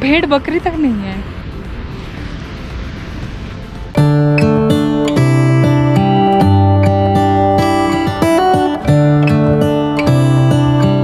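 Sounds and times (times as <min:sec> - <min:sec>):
wind on microphone: 0:00.0 - 0:06.6
distant waterfall rushing: 0:00.0 - 0:11.0.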